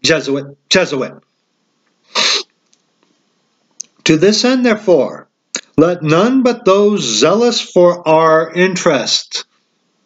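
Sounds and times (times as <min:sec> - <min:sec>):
man's sharp breath: 0:02.1 - 0:02.5
faint mouth click: 0:05.5 - 0:05.8.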